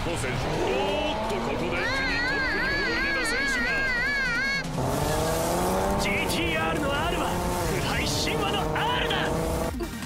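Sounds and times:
rushing noise: 0.0 - 9.7
race car engine revving: 0.0 - 10.0.

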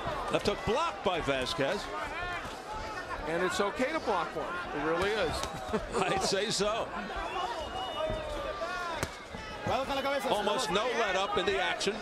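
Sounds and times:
broadcast commentary: 0.2 - 12.0.

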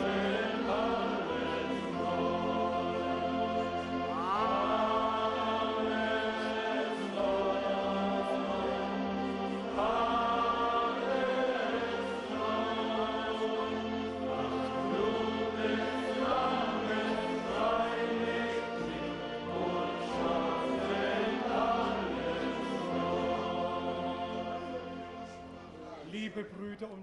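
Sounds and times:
congregation singing slowly: 0.0 - 26.9.

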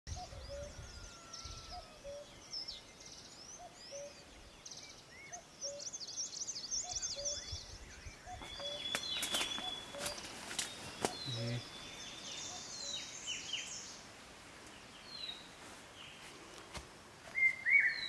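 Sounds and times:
birds chirping: 0.1 - 18.0.

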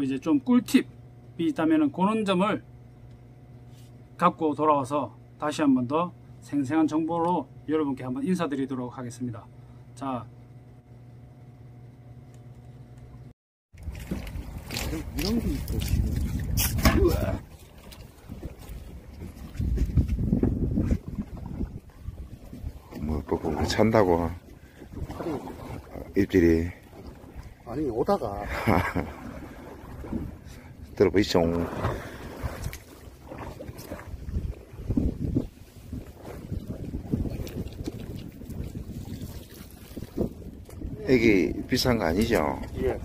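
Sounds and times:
boat engine rumble: 0.0 - 43.0
wind buffeting microphone: 13.8 - 43.0.

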